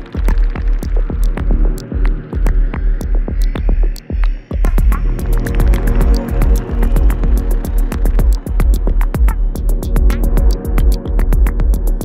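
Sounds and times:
hi-hat ticks: 0.0 - 12.0
pulsing bass line: 0.0 - 12.0.

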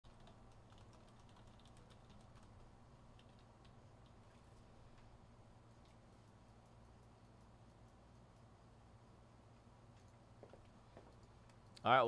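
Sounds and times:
typing on computer keyboard: 0.0 - 4.2
low steady hum: 0.0 - 12.0.

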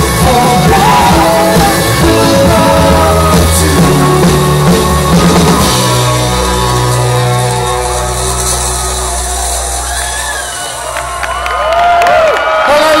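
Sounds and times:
rock band chord ringing out: 0.0 - 11.4
low bass drone: 0.0 - 11.7
crowd cheering and whooping: 0.7 - 13.0
people clapping: 6.6 - 13.0.

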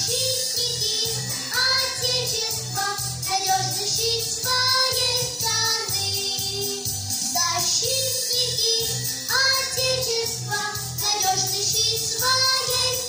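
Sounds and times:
girls singing in unison: 0.0 - 6.9, 8.8 - 13.0
backing track with steady beat: 0.0 - 13.0.

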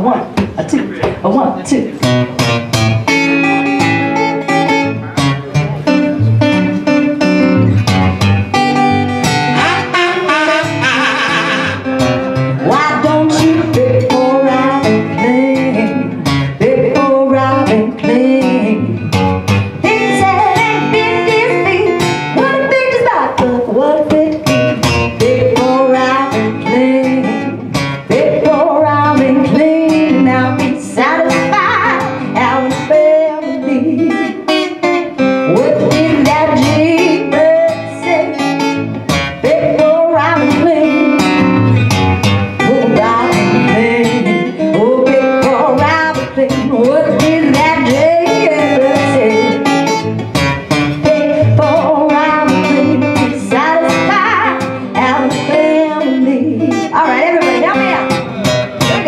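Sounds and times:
acoustic guitar strumming: 0.0 - 59.0
woman singing: 12.6 - 41.8, 42.5 - 59.0.

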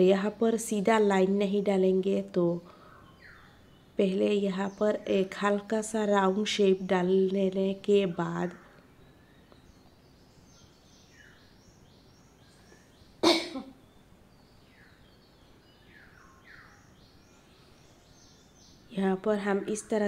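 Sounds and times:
person coughing: 13.2 - 13.8.

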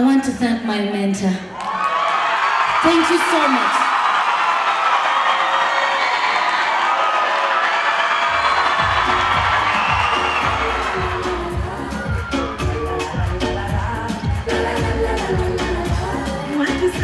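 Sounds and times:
crowd cheering and screaming: 1.5 - 16.2
pop music with heavy bass beat: 8.4 - 17.0.

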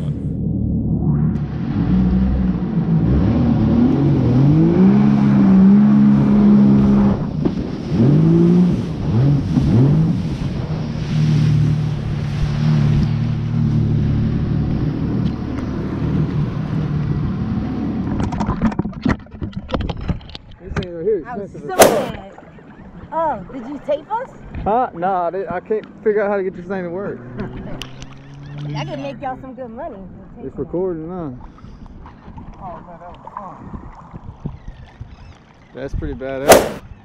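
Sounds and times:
jet ski engine revving: 1.4 - 16.2.

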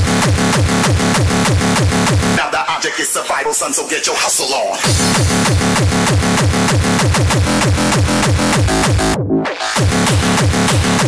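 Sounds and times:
distorted kick drum: 0.0 - 2.4, 4.9 - 11.0
droning bass: 0.0 - 2.4, 4.9 - 11.0.

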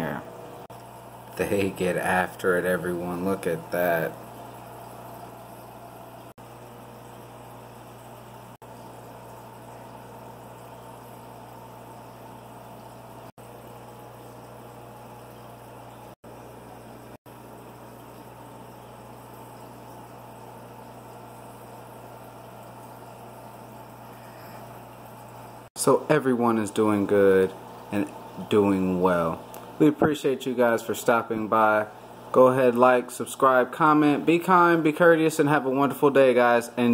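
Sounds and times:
aquarium air pump humming: 0.0 - 36.9
aquarium filter running: 0.0 - 36.9.

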